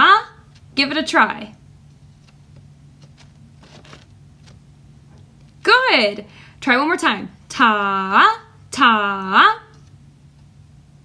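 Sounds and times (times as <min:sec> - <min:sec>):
steady low hum: 0:00.0 - 0:11.0
faint clicks and rustles: 0:01.8 - 0:05.7.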